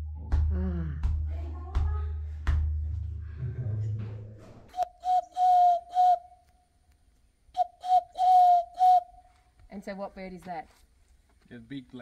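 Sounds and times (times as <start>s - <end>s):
man whistling through cupped hands: 4.7s - 6.4s, 7.6s - 9.3s.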